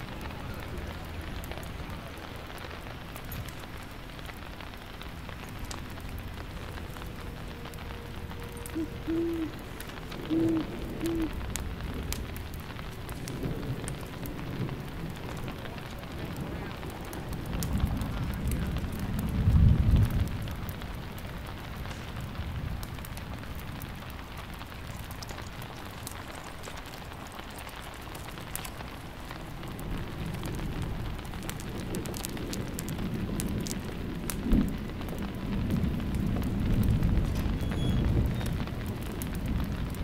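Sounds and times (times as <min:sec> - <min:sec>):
steady rain falling: 0:00.0 - 0:40.0
thunder rumbling: 0:00.0 - 0:40.0.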